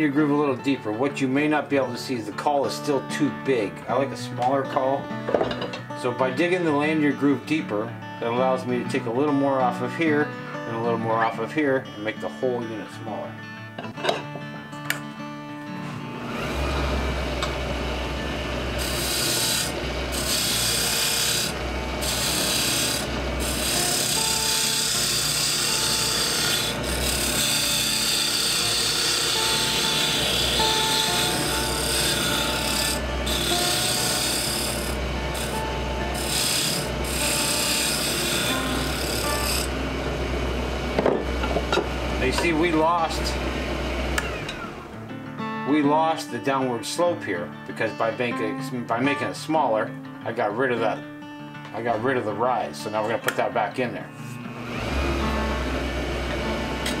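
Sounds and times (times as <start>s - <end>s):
lathe motor hum: 16.1s - 44.9s, 54.2s - 57.0s
turning tool scraping wood: 18.4s - 39.8s.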